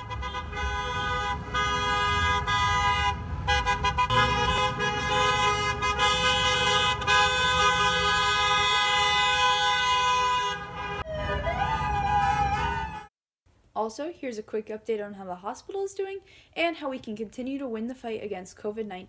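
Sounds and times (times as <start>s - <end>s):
car horns honking: 0.0s - 11.2s
rising siren wail: 8.8s - 13.1s.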